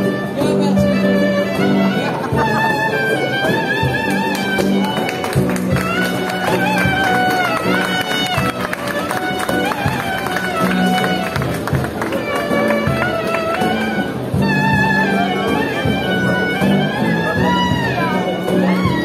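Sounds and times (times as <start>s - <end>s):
crowd: 0.0s - 19.0s
street band playing guitars: 0.0s - 19.0s.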